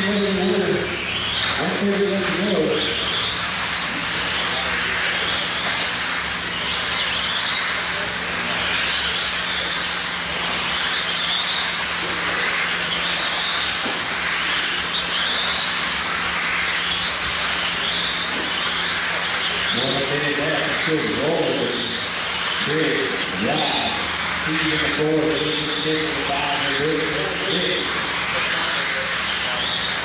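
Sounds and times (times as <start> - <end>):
electric motors whining: 0.0 - 30.0
steady low hum: 0.0 - 30.0.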